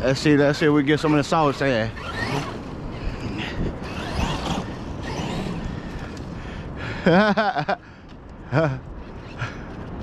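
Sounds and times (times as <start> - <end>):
rc truck driving on sand: 0.0 - 7.8.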